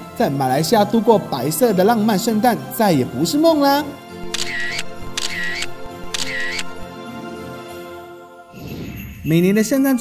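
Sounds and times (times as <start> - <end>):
background music sustained tones: 0.0 - 10.0
camera shutter clicks: 4.2 - 6.8.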